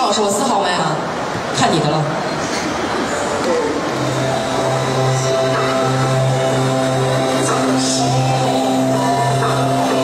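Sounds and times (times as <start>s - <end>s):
pop backing track over loudspeakers: 0.0s - 10.0s.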